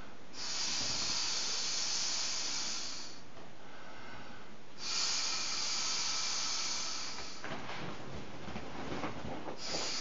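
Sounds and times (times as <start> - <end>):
person blowing into inflatable valve: 0.4 - 3.2, 4.8 - 7.4.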